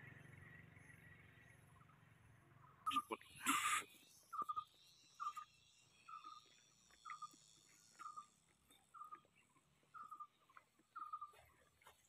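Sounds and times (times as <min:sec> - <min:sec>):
small animal chirping: 0:04.2 - 0:05.5, 0:06.1 - 0:09.2, 0:09.9 - 0:11.4.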